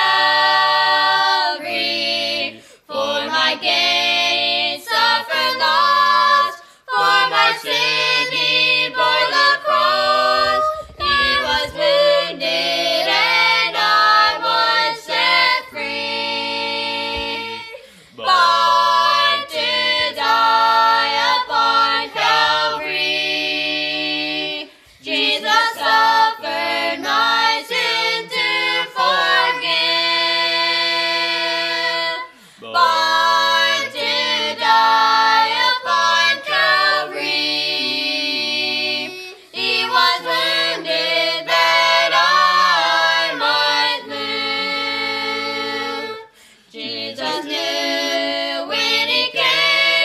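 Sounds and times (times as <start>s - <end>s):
vocal quartet singing gospel: 0.0s - 50.0s.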